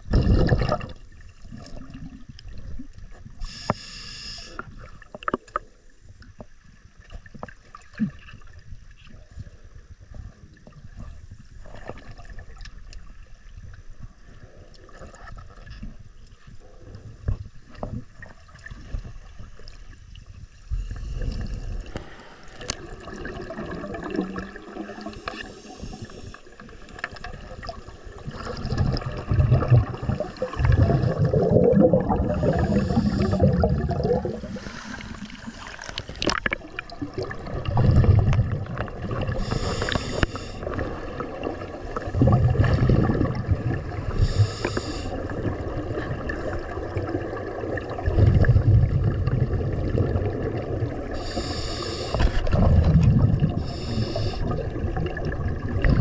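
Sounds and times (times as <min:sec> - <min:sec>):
water gurgling and sloshing: 0:00.0 - 0:03.7, 0:04.6 - 0:56.0.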